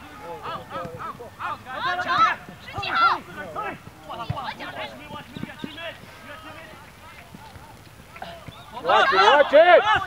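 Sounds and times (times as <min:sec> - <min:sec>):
players shouting: 0:00.0 - 0:10.0.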